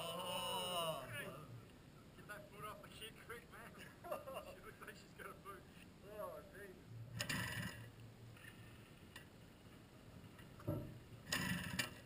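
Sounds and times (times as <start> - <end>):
motorcycle mechanical rattle: 7.2 - 8.6, 10.6 - 12.0.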